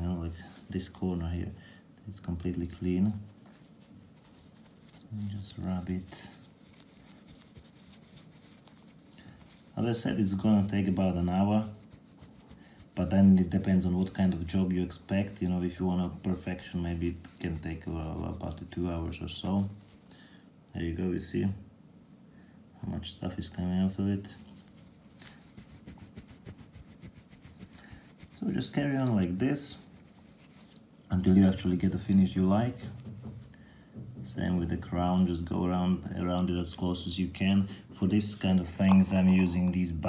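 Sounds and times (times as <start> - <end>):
cloth rubbing on metal: 0.0 - 1.6, 2.2 - 20.0, 23.2 - 40.0.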